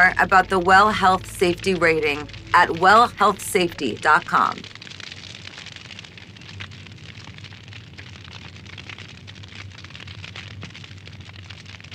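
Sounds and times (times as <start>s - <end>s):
fire crackling: 0.0s - 11.9s.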